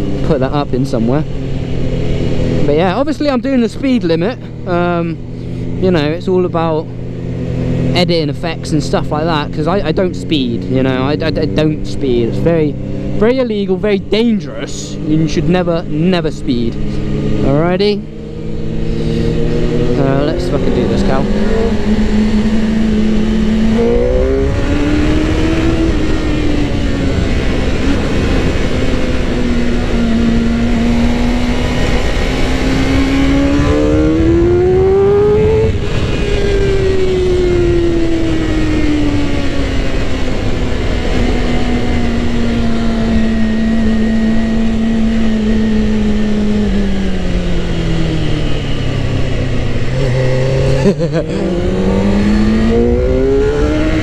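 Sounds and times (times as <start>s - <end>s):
motorcycle engine revving: 0.0s - 54.0s
wind rush: 18.4s - 44.2s.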